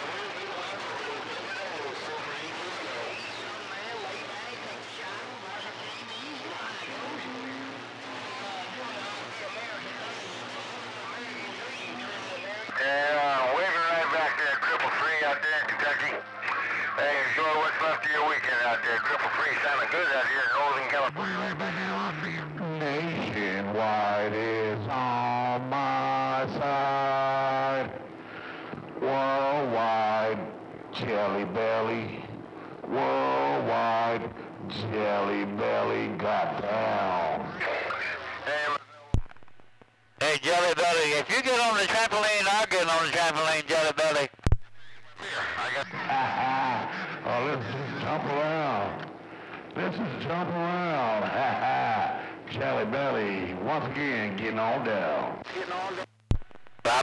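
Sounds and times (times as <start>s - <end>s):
hissy radio signal: 0.0s - 30.4s, 32.8s - 52.4s, 54.6s - 57.0s
distorted music over radio speaker: 0.0s - 57.0s.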